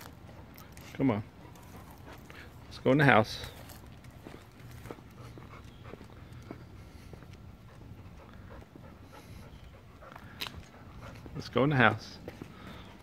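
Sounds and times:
dog panting softly: 0:00.1 - 0:02.8, 0:04.3 - 0:13.0.

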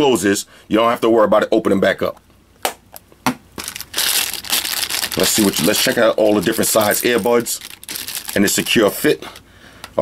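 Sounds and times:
plastic bag crinkling: 0:03.6 - 0:09.5.

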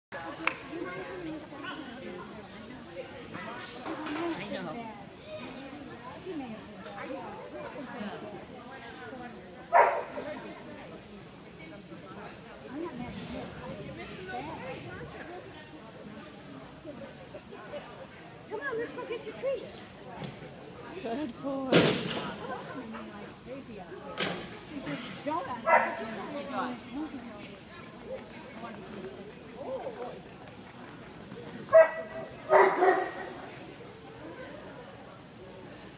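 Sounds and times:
background talk in a hall: 0:00.1 - 0:35.9
dog barking: 0:09.7 - 0:10.1, 0:25.7 - 0:26.0, 0:31.7 - 0:33.2.

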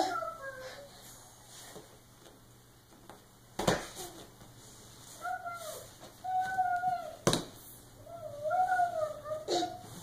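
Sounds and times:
baby vocalizing: 0:08.8 - 0:09.9.

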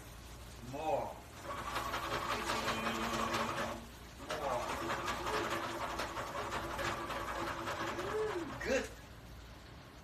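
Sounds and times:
utensil tapping cookware: 0:01.5 - 0:08.7.

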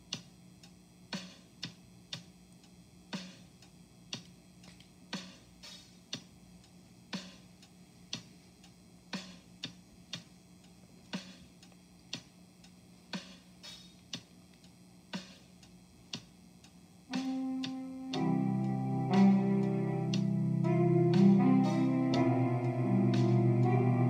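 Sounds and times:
clock ticking: 0:00.0 - 0:24.0
music with held chord: 0:17.1 - 0:24.0.

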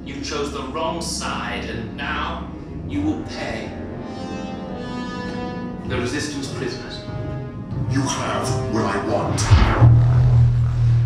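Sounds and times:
deep low drone: 0:00.0 - 0:11.0
soundtrack music: 0:02.5 - 0:11.0.

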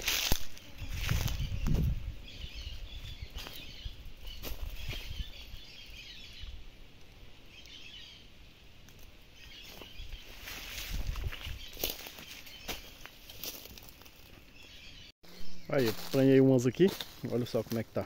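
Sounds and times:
leaves rustling: 0:00.0 - 0:06.8, 0:07.6 - 0:15.0, 0:15.6 - 0:18.0
wind rumble on microphone: 0:00.7 - 0:05.7, 0:10.0 - 0:11.8
faint high bird chirps: 0:00.7 - 0:06.6, 0:09.3 - 0:13.1, 0:14.5 - 0:16.2.

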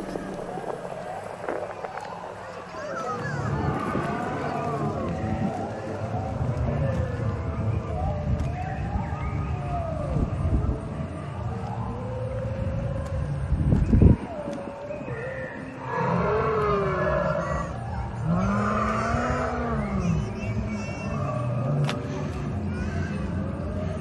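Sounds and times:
voices of visitors: 0:00.0 - 0:24.0
recorded dinosaur roars and growls: 0:12.0 - 0:24.0.

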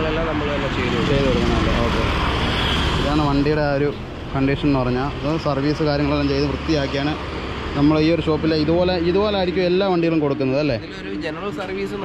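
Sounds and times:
loud road traffic: 0:00.0 - 0:12.0.

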